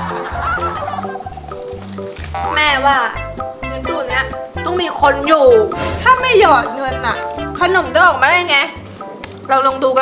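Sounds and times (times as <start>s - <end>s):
background music with repeating bass: 0.0s - 9.6s.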